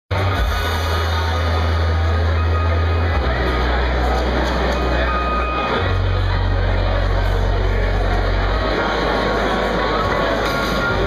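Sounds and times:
concert crowd din: 0.1s - 11.0s
deep bass drone: 0.1s - 11.0s.

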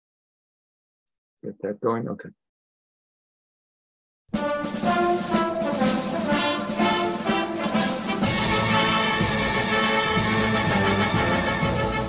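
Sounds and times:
instrumental anthem music: 4.3s - 12.0s.

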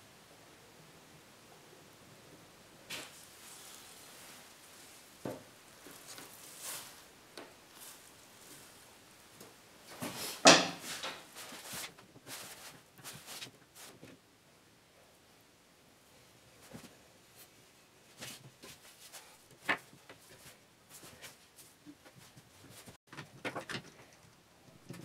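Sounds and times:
wood clattering: 9.4s - 14.1s, 22.8s - 25.0s
wood strips knocking: 10.4s - 11.6s.

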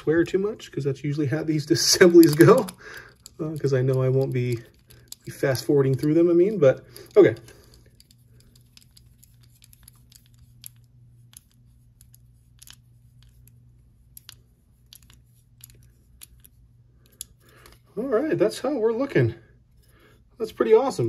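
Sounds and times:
low steady hum: 0.0s - 21.0s
light metallic clicks and ticks: 1.8s - 17.9s.

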